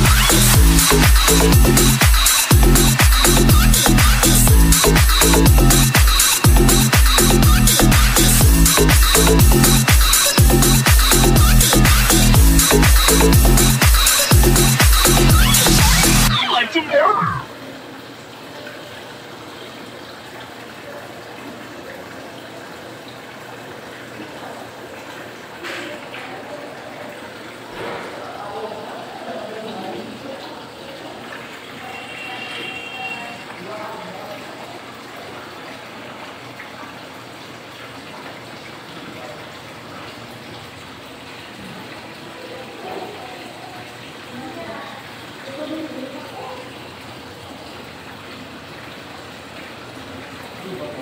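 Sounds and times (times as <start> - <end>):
running water rushing: 0.0 - 51.0.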